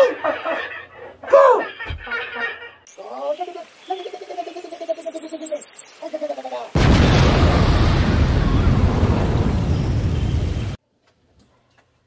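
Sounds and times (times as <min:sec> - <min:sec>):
high pulsing laugh: 0:00.0 - 0:02.7.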